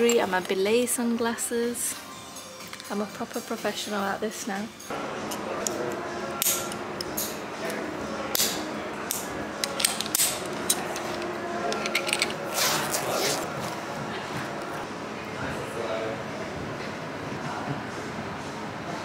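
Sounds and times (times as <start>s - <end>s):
indistinct echoing voices: 0.0s - 19.0s.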